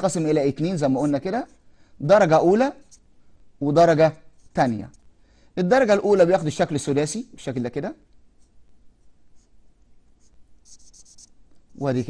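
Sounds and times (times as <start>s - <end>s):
marker scratching on paper: 2.8s - 3.1s, 4.2s - 5.1s, 8.4s - 11.4s.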